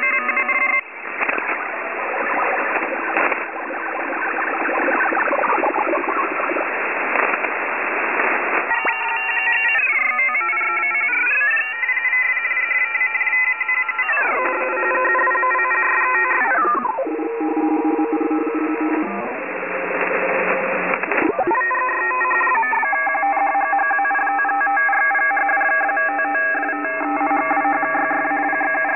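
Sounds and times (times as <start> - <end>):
radio static hiss: 0.0 - 11.5, 14.1 - 23.5.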